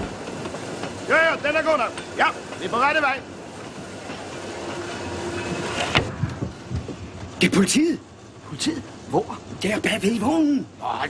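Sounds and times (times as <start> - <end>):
train rumbling on rails: 0.0 - 11.0.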